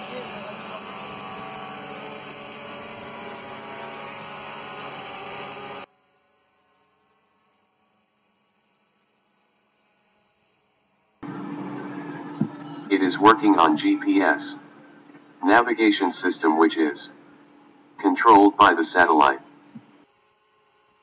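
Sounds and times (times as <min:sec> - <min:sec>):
drone motors humming: 0:00.0 - 0:21.0.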